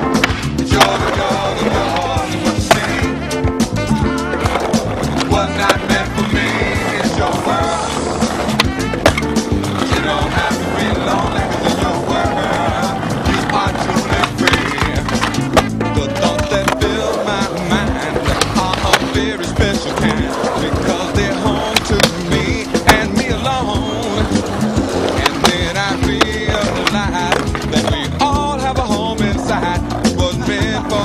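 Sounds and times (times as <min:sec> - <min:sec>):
skateboard clacks and impacts: 0:00.0 - 0:03.1, 0:04.3 - 0:30.7
song playing: 0:00.0 - 0:31.0.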